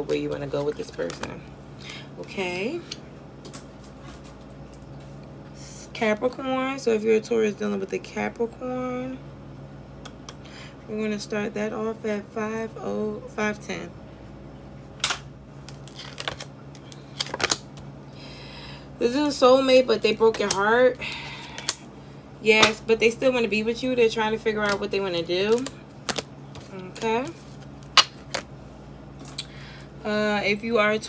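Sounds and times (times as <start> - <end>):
low steady hum: 0.0 - 31.0
cards rustling: 15.6 - 17.6.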